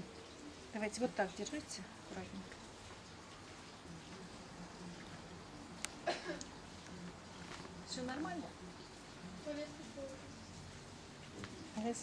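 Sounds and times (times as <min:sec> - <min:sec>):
background hiss: 0:00.0 - 0:12.0
faint low voices murmuring: 0:03.6 - 0:12.0.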